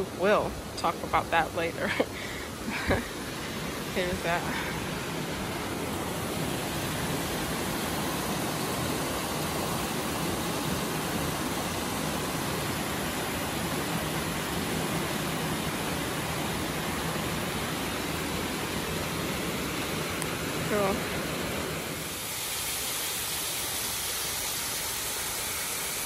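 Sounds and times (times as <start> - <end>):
brook rushing through rocky gorge: 0.0 - 26.0.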